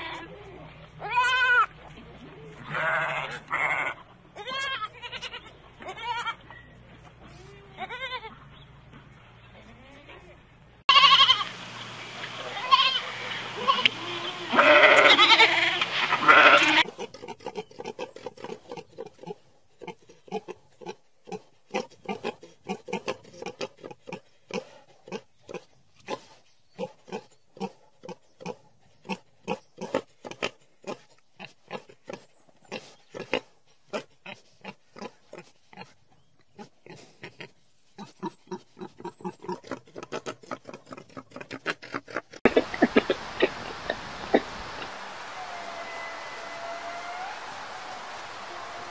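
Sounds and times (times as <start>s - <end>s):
sheep bleating loudly: 2.7s - 6.4s, 10.9s - 11.5s, 12.5s - 16.9s
wild boars grunting: 38.2s - 45.0s.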